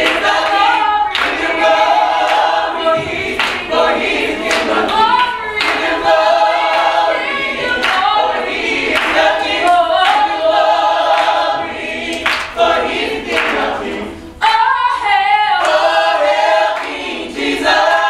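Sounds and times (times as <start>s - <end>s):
hand claps: 0.0s - 1.6s, 2.2s - 7.0s, 7.8s - 10.4s, 11.1s - 13.7s, 15.6s - 15.9s, 16.7s - 17.1s
gospel choir singing: 0.0s - 18.0s.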